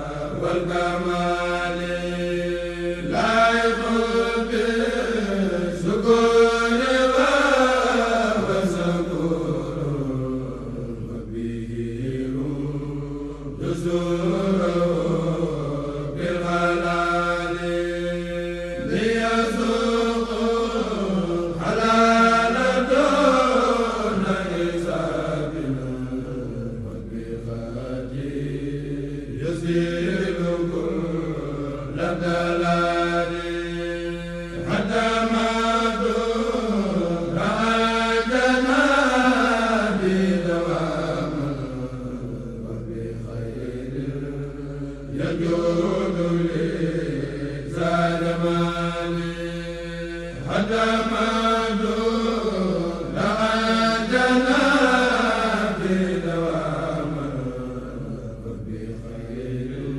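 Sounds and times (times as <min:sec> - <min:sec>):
men chanting in unison: 0:00.0 - 0:59.9.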